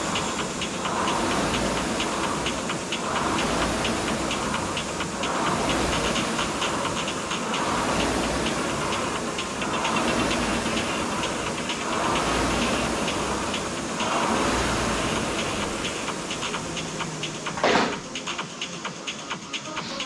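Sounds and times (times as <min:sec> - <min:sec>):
rowing machine flywheel whooshing: 0:00.0 - 0:20.0.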